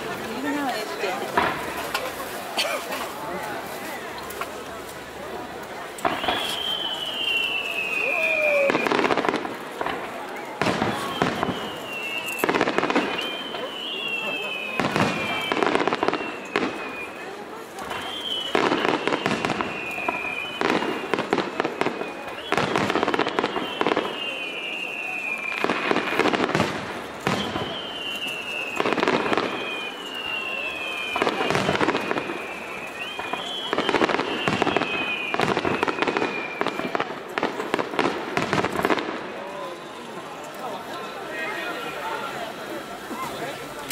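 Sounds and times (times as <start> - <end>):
firework bangs and crackling: 0.0 - 43.9
falling firework whistles: 6.0 - 40.5.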